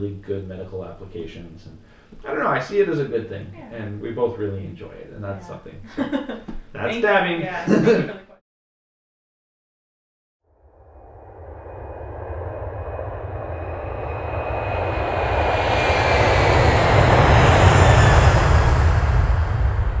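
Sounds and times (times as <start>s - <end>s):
jet-like roar: 11.0s - 20.0s.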